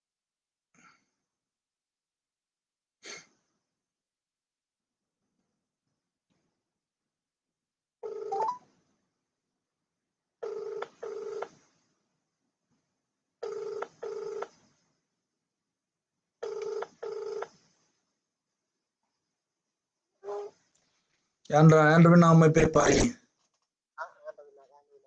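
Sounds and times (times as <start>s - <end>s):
telephone double rings: 8.0s - 8.6s, 10.4s - 11.5s, 13.4s - 14.5s, 16.4s - 17.5s.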